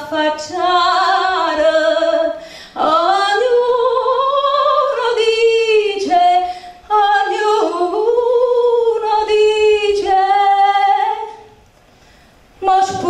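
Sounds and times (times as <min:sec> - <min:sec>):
woman singing unaccompanied: 0:00.0 - 0:11.5, 0:12.6 - 0:13.0.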